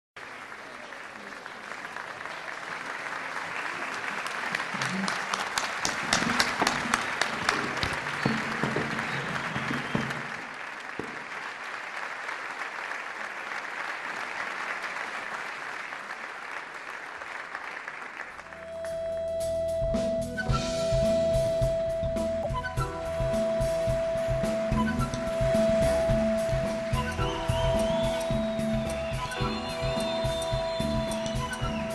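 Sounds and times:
audience applauding: 0.2s - 19.5s, 22.4s - 31.9s.

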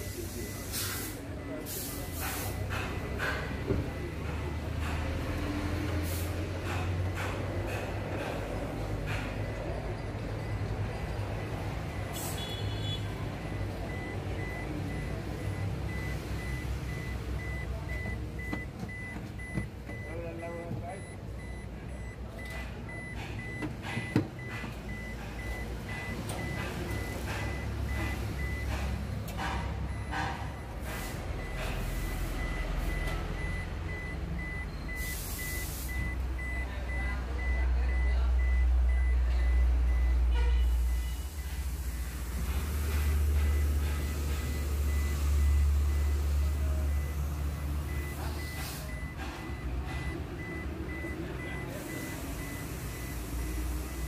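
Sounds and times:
car warning beeper: 0.0s - 5.9s, 8.6s - 54.0s.

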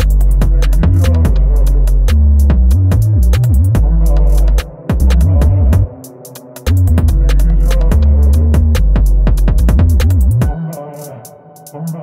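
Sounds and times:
deep sliding bass notes: 0.0s - 6.0s, 6.7s - 10.5s
fast hi-hat clicks: 0.0s - 12.0s.

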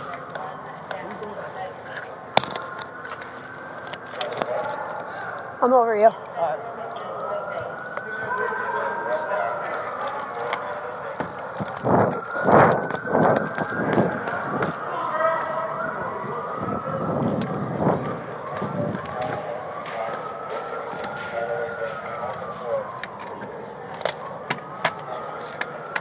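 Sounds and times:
faint voices: 0.0s - 26.0s
siren wailing: 0.0s - 26.0s.

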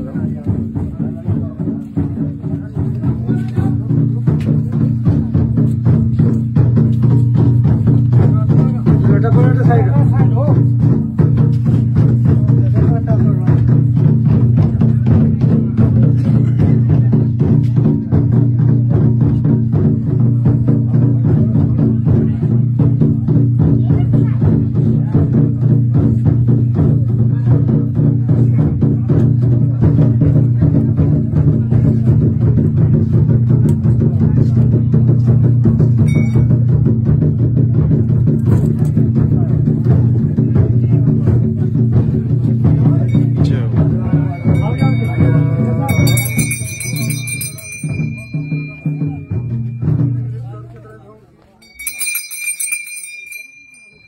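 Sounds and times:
fast drumbeats: 0.0s - 54.0s
ringing tone: 36.1s - 36.5s, 44.1s - 50.5s, 51.6s - 54.0s.

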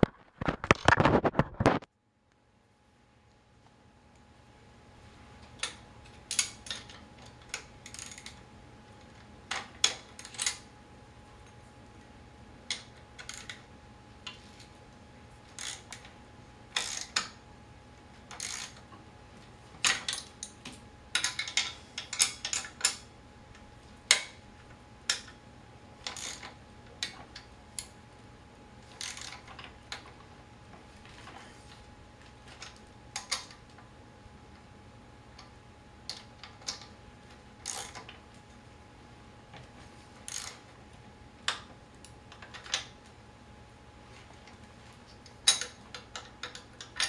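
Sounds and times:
wrench clicking on bolts: 5.6s - 8.4s, 15.6s - 16.0s, 16.8s - 17.3s, 18.3s - 18.8s, 21.2s - 23.0s, 26.0s - 27.2s, 29.0s - 29.5s, 37.6s - 38.0s, 40.3s - 40.6s.

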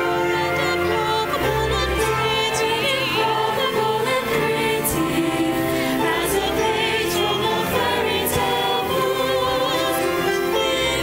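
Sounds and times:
ensemble singing: 0.0s - 11.0s
orchestra playing: 0.0s - 11.0s.

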